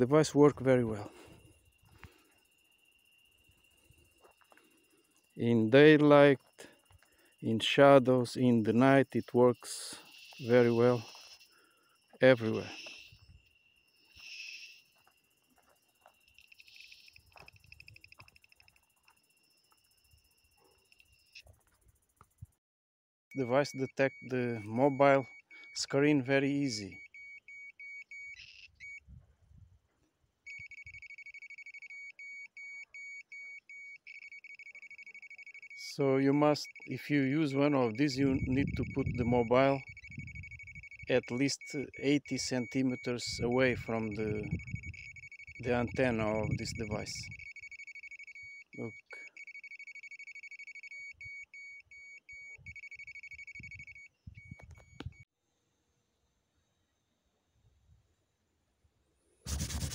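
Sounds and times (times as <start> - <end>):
rapid electronic beeps: 32.6 - 55.2.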